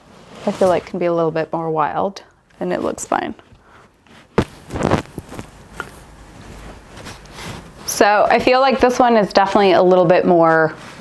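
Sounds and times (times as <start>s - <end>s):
faint handling noises: 2.5s - 8.1s
hair rustling: 4.0s - 9.8s.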